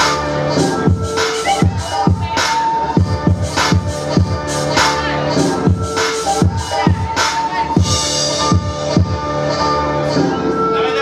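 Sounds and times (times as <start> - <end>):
heavy kick-drum beat: 0.0 - 9.2
hip-hop dance music: 0.0 - 11.0.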